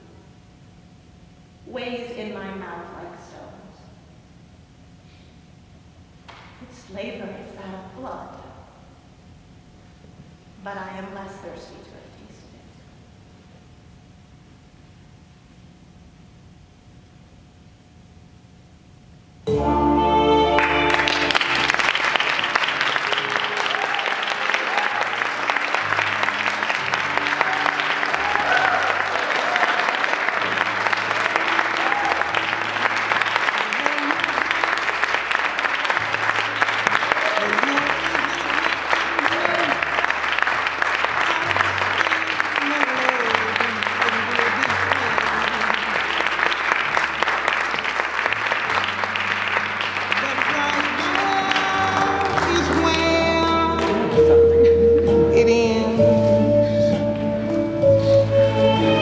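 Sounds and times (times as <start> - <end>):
audience applauding: 20.5 - 54.2.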